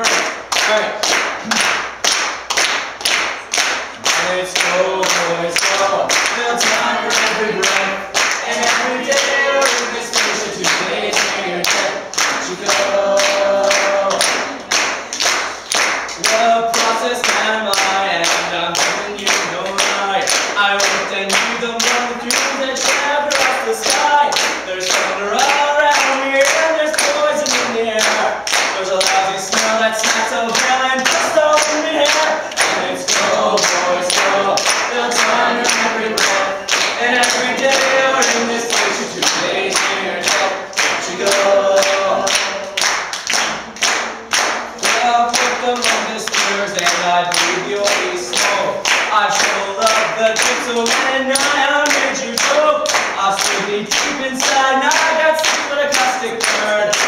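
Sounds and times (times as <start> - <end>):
audience clapping a beat: 0.0 - 57.0
man singing a cappella: 4.1 - 14.6, 16.2 - 42.8, 44.8 - 57.0.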